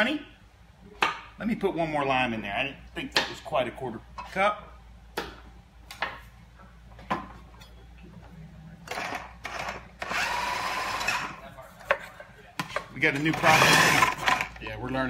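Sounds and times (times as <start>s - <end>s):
food processor motor whine: 9.0s - 11.3s, 13.4s - 14.5s.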